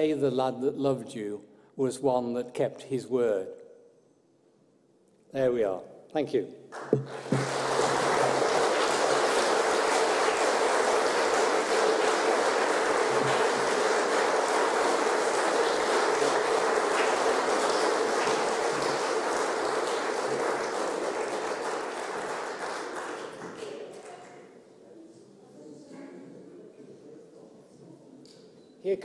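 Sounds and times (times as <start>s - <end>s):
audience applauding: 6.7s - 24.4s.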